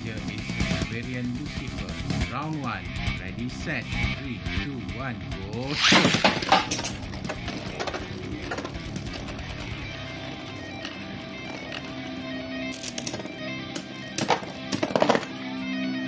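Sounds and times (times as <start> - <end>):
electric guitar music: 0.0 - 16.0.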